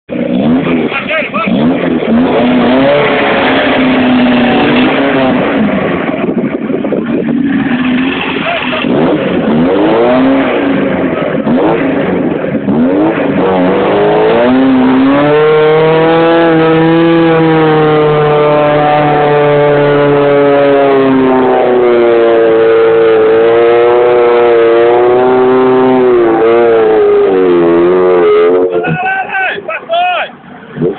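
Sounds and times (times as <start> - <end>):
jeep engine revving: 0.1 - 30.9.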